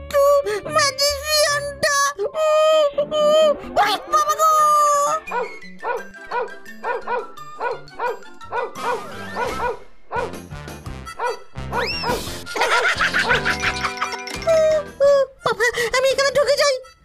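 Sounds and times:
background music: 0.0 - 17.0
cartoon dog barking: 5.0 - 10.3, 11.2 - 12.2.

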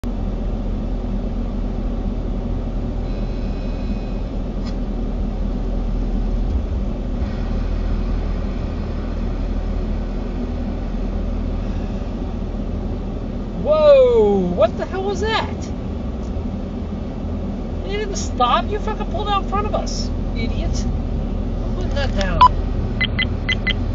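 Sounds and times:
road and engine rumble in car: 0.0 - 23.9
person exclaiming loudly: 13.6 - 15.6.

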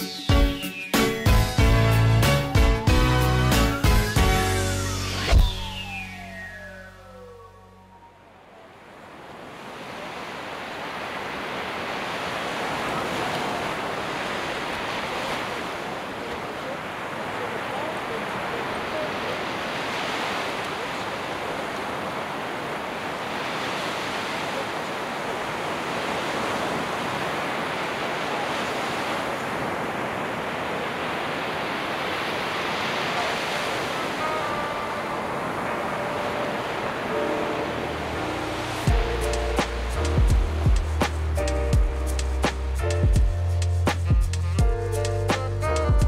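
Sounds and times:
music with heavy beat: 0.0 - 5.7, 38.9 - 46.0
waves breaking on beach: 3.0 - 42.8.

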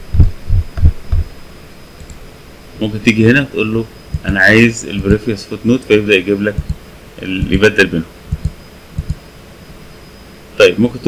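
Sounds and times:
dull low thumps: 0.0 - 1.4, 4.0 - 5.3, 6.6 - 9.2.

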